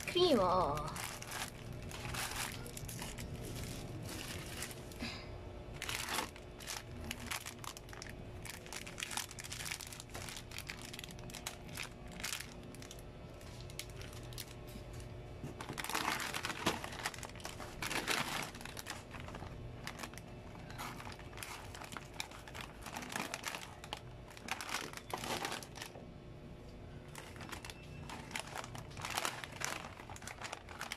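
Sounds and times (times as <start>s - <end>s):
plastic packets crinkling: 0.0s - 26.0s, 26.9s - 30.9s.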